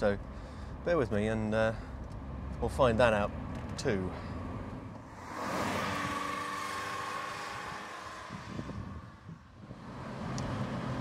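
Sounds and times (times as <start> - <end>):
road noise: 0.0 - 11.0
wind noise: 7.4 - 9.8.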